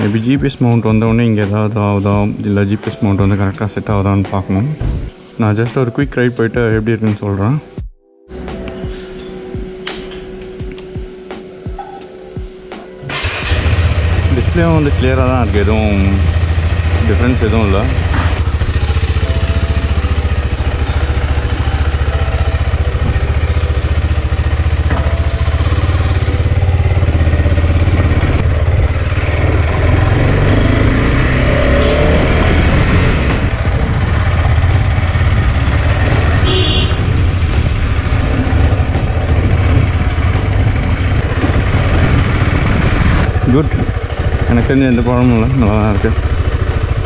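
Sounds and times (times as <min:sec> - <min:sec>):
motorcycle engine running: 0:11.7 - 0:47.0.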